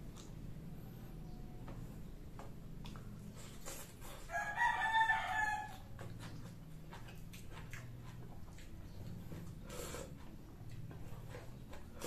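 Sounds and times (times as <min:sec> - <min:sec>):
low steady hum: 0:00.0 - 0:12.0
chewing clicks: 0:02.4 - 0:04.1, 0:05.7 - 0:12.0
rooster crowing: 0:04.2 - 0:05.9.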